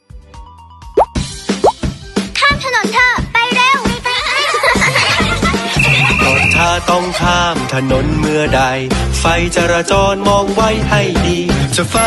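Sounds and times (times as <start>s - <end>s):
children's song with steady beat: 2.7s - 12.0s
person singing: 5.8s - 12.0s.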